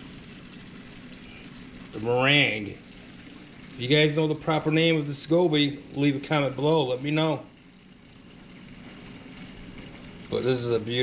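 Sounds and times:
aquarium equipment humming: 0:00.0 - 0:11.0
water circulating: 0:00.0 - 0:11.0.

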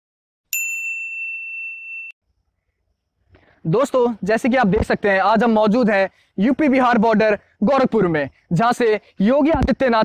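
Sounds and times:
bell-like ding: 0:00.5 - 0:02.2.

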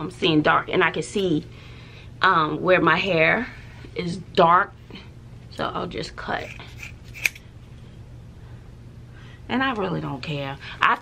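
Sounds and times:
low steady hum: 0:00.0 - 0:11.0
scissors snipping: 0:06.4 - 0:07.4.

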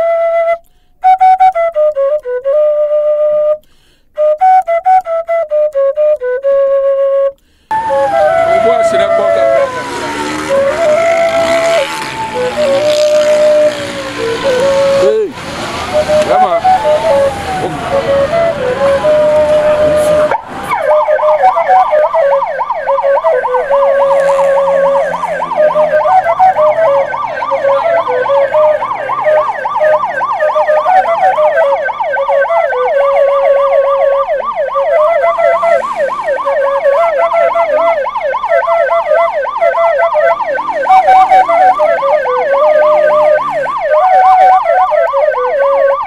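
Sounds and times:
electronic siren wailing and yelping: 0:07.7 - 0:46.0.

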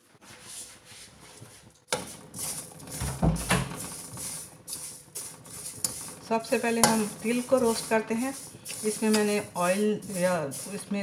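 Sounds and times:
spoon scraping a metal pan: 0:01.9 - 0:11.0
seeds rustling in a pan: 0:02.1 - 0:11.0.

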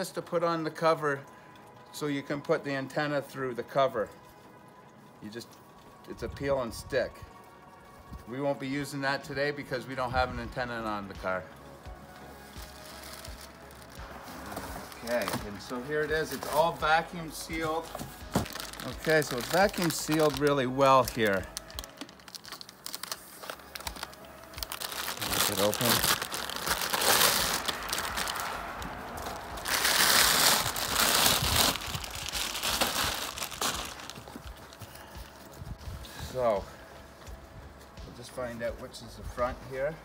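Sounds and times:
music with steady low beat: 0:10.1 - 0:16.3, 0:17.2 - 0:40.0
plastic bag crinkling: 0:12.4 - 0:35.6.

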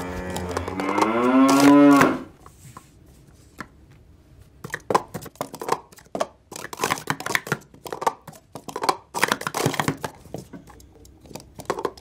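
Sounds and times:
low moo-like call: 0:00.0 - 0:02.3.

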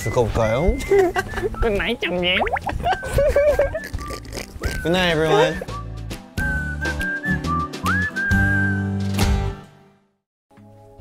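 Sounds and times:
music with whistled melody: 0:00.0 - 0:09.7.

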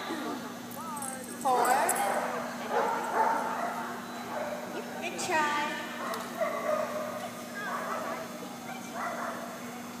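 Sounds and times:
steady low hum: 0:00.0 - 0:10.0
dogs barking: 0:01.5 - 0:04.9, 0:06.0 - 0:09.6.

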